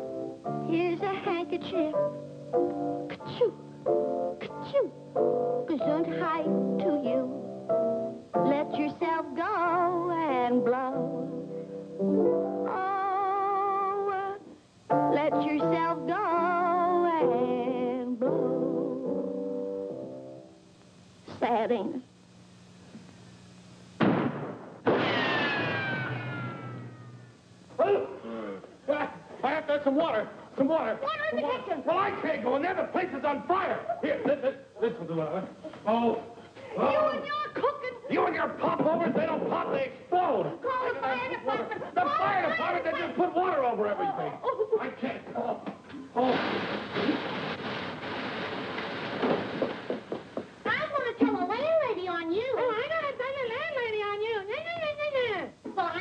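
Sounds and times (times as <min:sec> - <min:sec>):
blast with falling tone: 0:24.0 - 0:27.3
sudden bang: 0:24.0 - 0:27.3, 0:46.2 - 0:50.3
hissing noise: 0:46.1 - 0:50.7.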